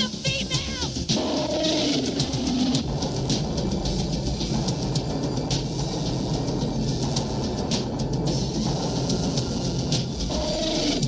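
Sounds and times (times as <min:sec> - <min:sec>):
soundtrack music: 0:00.0 - 0:11.0
rumble of sound effects: 0:01.1 - 0:11.0.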